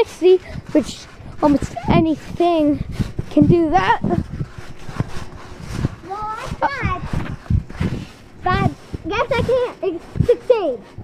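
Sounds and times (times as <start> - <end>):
wind on phone microphone: 0.0 - 11.0.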